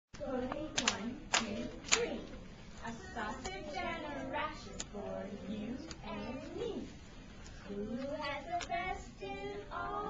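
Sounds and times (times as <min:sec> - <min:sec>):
people talking: 0:00.2 - 0:07.0, 0:07.6 - 0:10.0
hand claps: 0:00.7 - 0:02.0.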